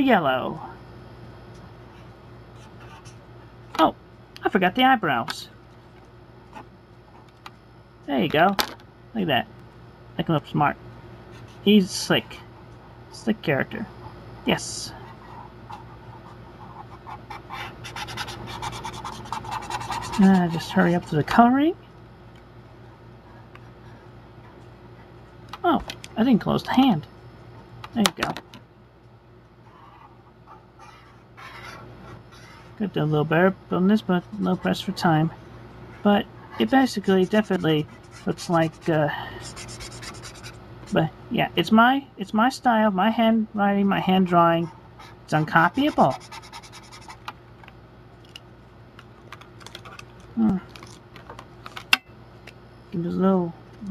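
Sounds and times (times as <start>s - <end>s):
steady low hum: 0.0s - 53.9s
marker scratching on paper: 15.2s - 21.1s, 29.7s - 32.7s, 37.0s - 40.6s, 45.0s - 47.2s.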